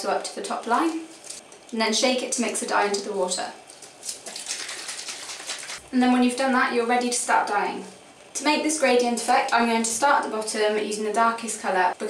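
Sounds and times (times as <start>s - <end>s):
water sloshing in shaken bottle: 3.7s - 5.9s.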